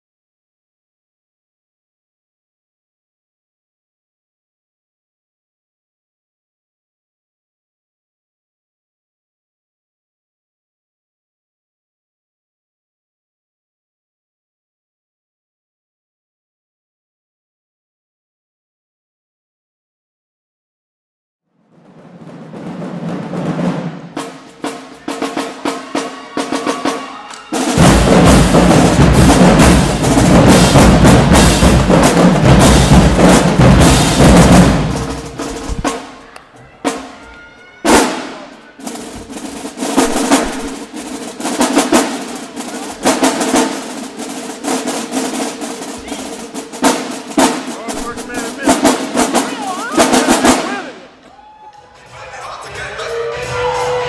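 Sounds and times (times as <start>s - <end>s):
marching drumline cadence: 21.6s - 54.0s
rhythmic snare patterns: 22.0s - 37.3s, 37.9s - 51.2s
heavy bass drums: 27.6s - 36.1s, 38.8s - 43.7s, 45.8s - 50.9s.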